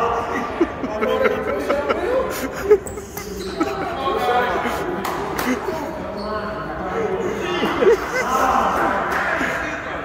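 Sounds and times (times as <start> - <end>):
voices chattering in gymnasium: 0.0 - 10.0.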